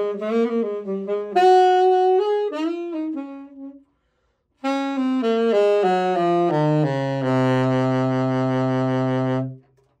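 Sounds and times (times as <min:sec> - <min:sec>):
alto saxophone low note: 0:00.0 - 0:03.9, 0:04.6 - 0:09.8.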